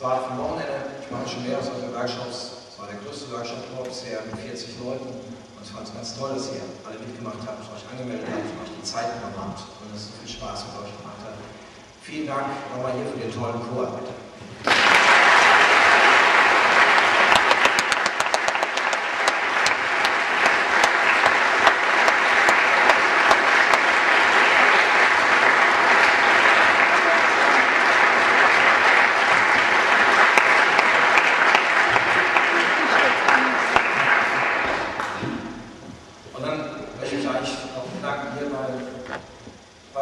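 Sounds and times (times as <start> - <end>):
audience applauding: 14.6 - 35.3.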